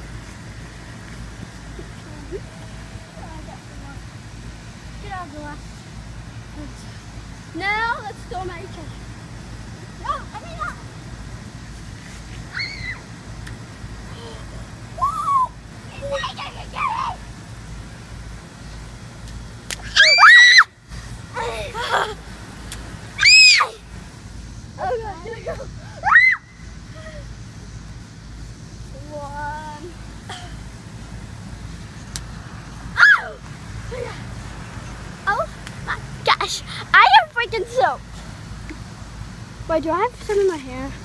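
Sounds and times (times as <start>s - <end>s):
steady low hum: 0.0s - 41.0s
children shrieking and squealing: 12.4s - 13.1s, 14.1s - 17.2s, 19.9s - 22.2s, 23.2s - 23.9s, 24.8s - 27.3s, 33.0s - 34.3s
high-pitched screams: 12.5s - 13.0s, 15.0s - 17.2s, 19.9s - 20.8s, 23.2s - 23.8s, 26.0s - 26.6s, 33.0s - 33.4s.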